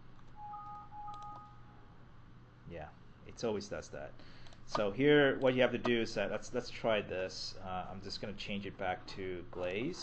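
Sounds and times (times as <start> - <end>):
faint steady hum: 0.0 - 10.0
electronic tones: 0.4 - 1.8.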